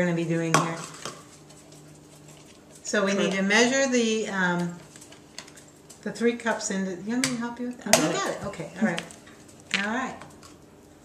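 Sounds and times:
woman speaking: 0:02.8 - 0:04.8, 0:06.0 - 0:09.1, 0:09.7 - 0:10.2.

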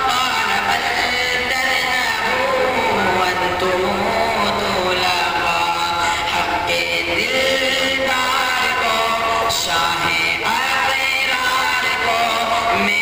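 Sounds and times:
man singing into a microphone: 0:00.0 - 0:13.0.

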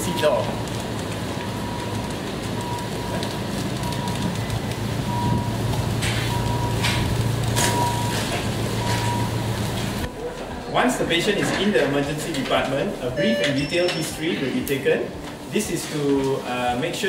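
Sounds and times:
faint high beep: 0:13.1 - 0:14.2.

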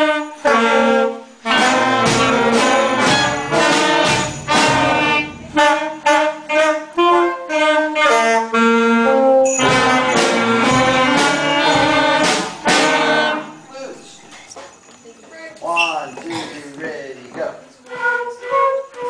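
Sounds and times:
wind band playing: 0:00.0 - 0:14.4, 0:17.7 - 0:19.0.

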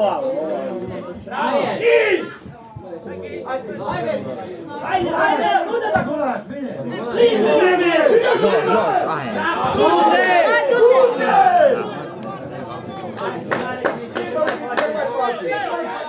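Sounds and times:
spectators chattering: 0:00.0 - 0:16.0.

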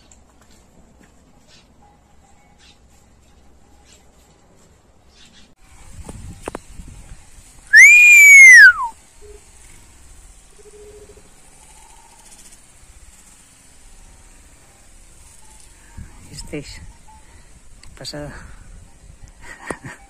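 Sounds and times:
mewing whistled call: 0:07.7 - 0:08.9.

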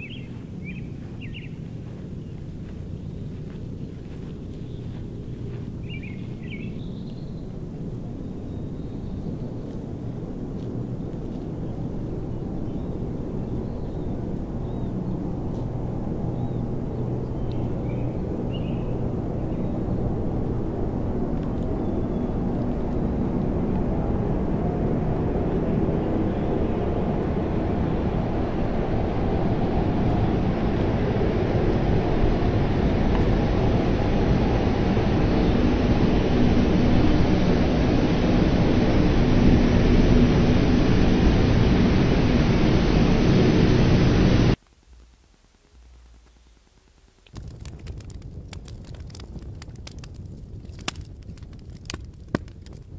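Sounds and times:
low rumbling horror score drone: 0:00.0 - 0:44.6
rushing hiss: 0:27.6 - 0:44.6.

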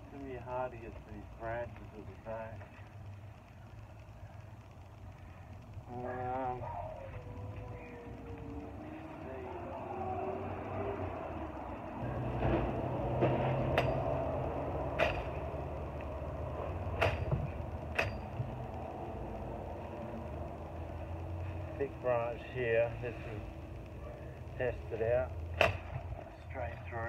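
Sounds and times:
steady low rumble: 0:00.0 - 0:27.0.

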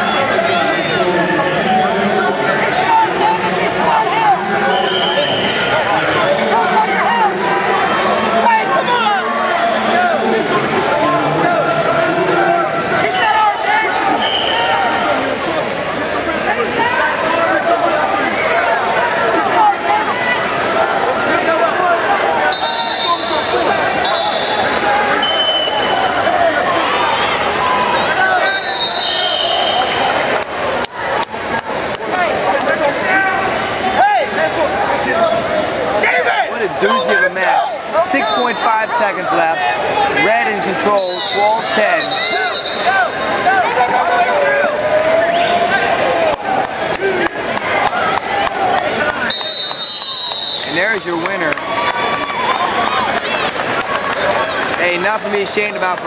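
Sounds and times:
crowd shouting and talking: 0:00.0 - 0:56.0.

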